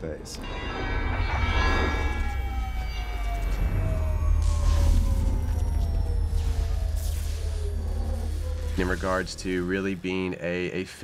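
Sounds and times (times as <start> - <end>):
deep rumble: 0.1 - 10.3
high electrical whines falling: 0.3 - 10.2.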